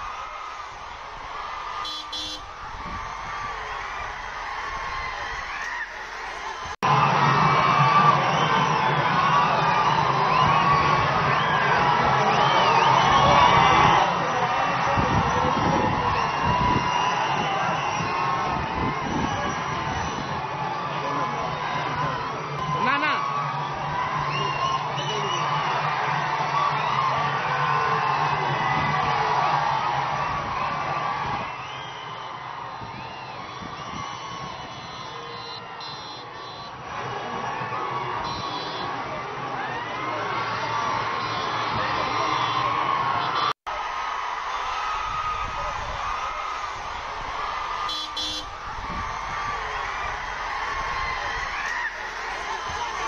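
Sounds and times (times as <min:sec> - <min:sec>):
crowd shouting and cheering: 0:00.0 - 0:53.0.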